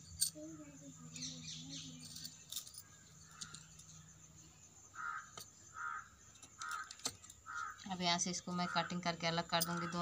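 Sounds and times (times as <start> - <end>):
crow cawing: 5.0 - 7.9, 8.6 - 9.0.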